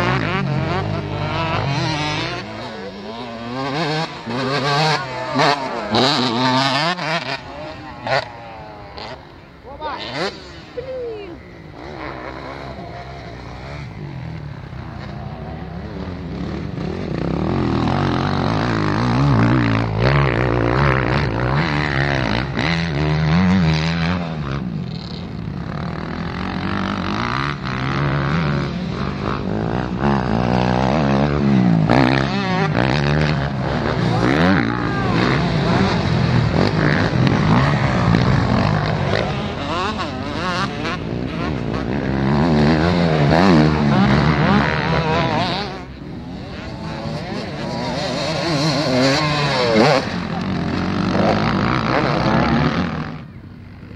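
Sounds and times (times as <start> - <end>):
dirt bike engines revving: 0.0 - 53.9.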